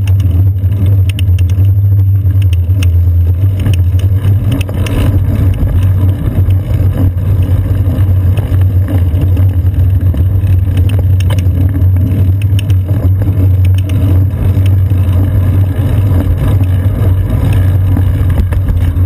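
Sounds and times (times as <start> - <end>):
light clicks and rattles: 0.0 - 19.0
wind buffeting and road rumble: 0.0 - 19.0.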